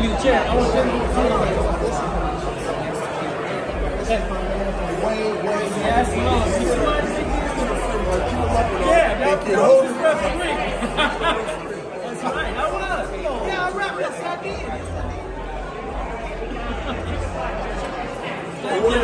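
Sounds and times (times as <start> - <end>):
overlapping chatter: 0.0 - 19.0.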